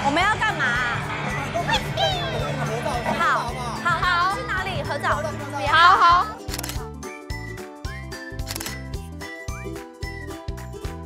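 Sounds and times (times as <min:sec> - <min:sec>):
upbeat music with chiming notes: 0:01.2 - 0:11.0.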